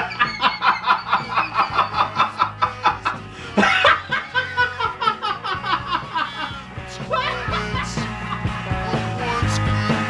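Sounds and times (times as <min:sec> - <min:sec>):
man laughing hard: 0:00.0 - 0:08.8
background music: 0:00.0 - 0:10.0.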